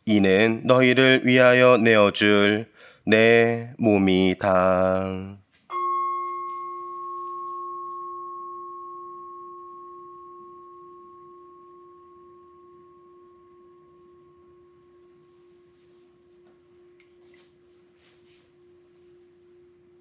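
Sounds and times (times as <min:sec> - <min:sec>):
altar bell ringing: 0:05.7 - 0:17.9.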